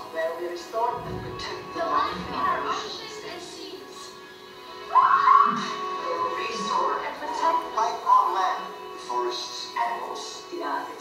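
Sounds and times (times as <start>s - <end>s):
background music: 0.0s - 11.0s
voices speaking: 0.1s - 11.0s.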